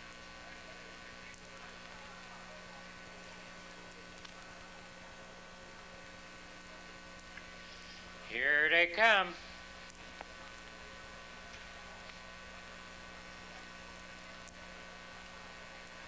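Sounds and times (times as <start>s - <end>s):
background hiss: 0.0s - 16.0s
faint electrical hum: 0.0s - 16.0s.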